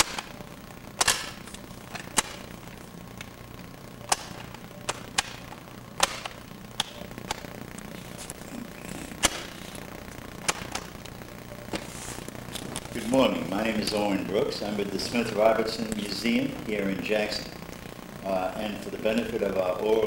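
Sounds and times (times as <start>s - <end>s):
low hum and hiss: 0.0s - 20.0s
sharp clicks: 4.0s - 7.8s.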